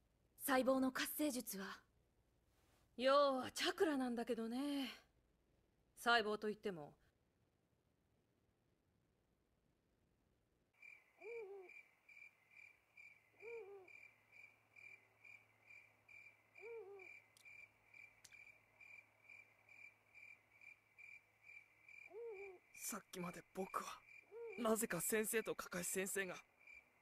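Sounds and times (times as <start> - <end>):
owl hooting: 10.8 - 20.4, 21.0 - 22.9, 23.7 - 25.0
cricket chirping: 10.8 - 27.0.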